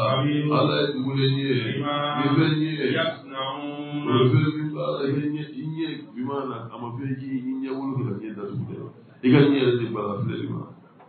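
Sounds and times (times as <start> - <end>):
man chanting into a microphone: 0.0 - 10.7.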